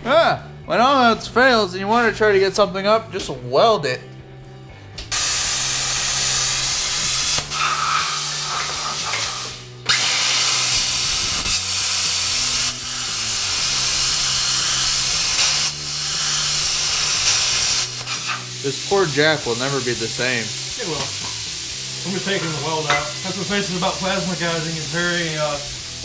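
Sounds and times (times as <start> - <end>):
plasma cutter hissing: 5.1 - 26.0.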